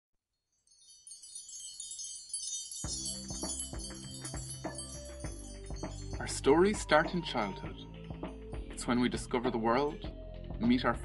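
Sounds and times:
shimmering bell-like chimes: 0.5 - 8.6.

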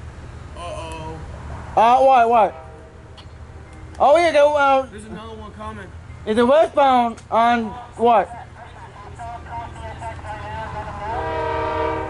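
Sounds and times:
locomotive air horn chord: 10.9 - 12.0.

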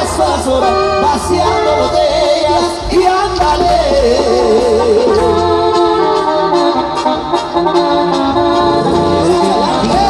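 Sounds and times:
brass band playing: 0.0 - 10.0
tuba bass line: 0.0 - 10.0
wind instruments holding chords: 0.0 - 10.0.

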